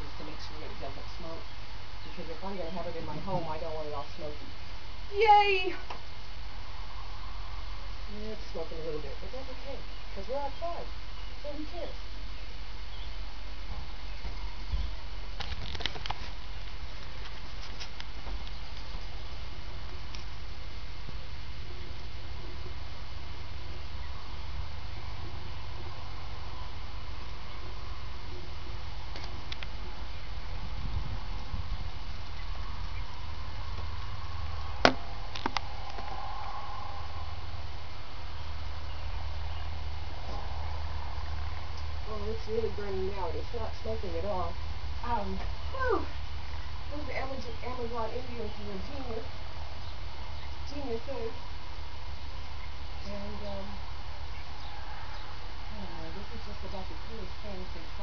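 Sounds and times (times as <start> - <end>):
twig fire crackling: 0.0 - 58.0
fire popping: 12.8 - 26.1, 26.7 - 36.6
low rumble: 18.4 - 54.6.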